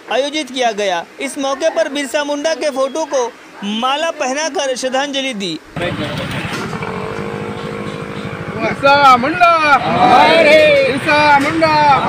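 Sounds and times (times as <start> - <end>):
motor engine running: 5.8 - 11.0
man shouting: 9.6 - 12.0.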